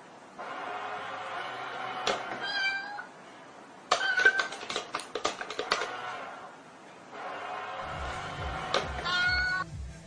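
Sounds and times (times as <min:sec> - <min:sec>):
cat meowing: 0:02.4 - 0:03.1, 0:09.0 - 0:09.6.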